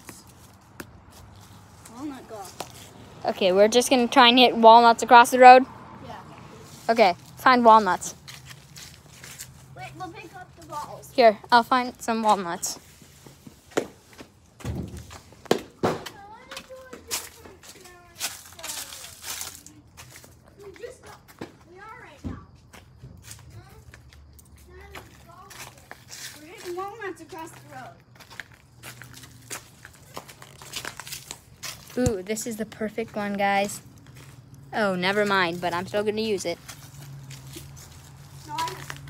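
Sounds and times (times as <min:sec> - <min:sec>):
footsteps on leaves and grass: 0:00.0 - 0:03.2, 0:06.6 - 0:11.1, 0:16.7 - 0:20.7, 0:24.8 - 0:32.3, 0:33.0 - 0:39.0
distant children talking: 0:15.9 - 0:28.1, 0:38.4 - 0:39.0.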